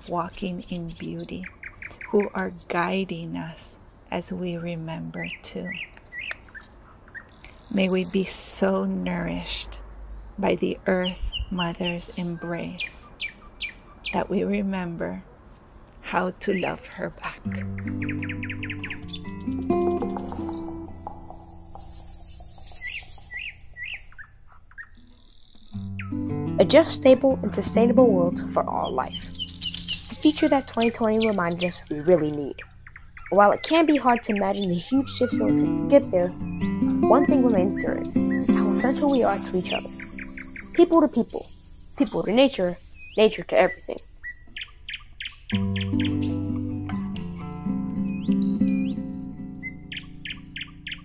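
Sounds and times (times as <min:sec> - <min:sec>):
small songbird chirping: 0:00.0 - 0:14.5, 0:15.3 - 0:47.2, 0:47.9 - 0:51.0
background music: 0:17.5 - 0:22.2, 0:25.8 - 0:32.4, 0:34.9 - 0:41.5, 0:45.6 - 0:51.0.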